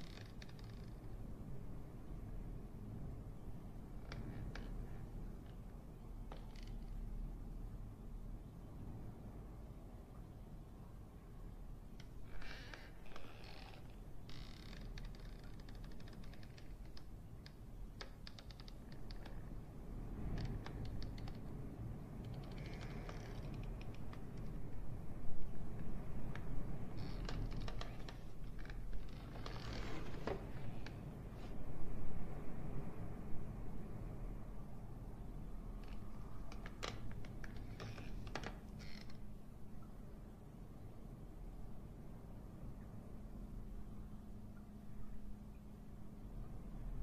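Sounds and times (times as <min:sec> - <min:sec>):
faint scraping creaks: 0:00.0 - 0:01.7, 0:03.8 - 0:07.1, 0:12.0 - 0:31.6, 0:35.8 - 0:39.4
low steady hum: 0:00.0 - 0:47.0.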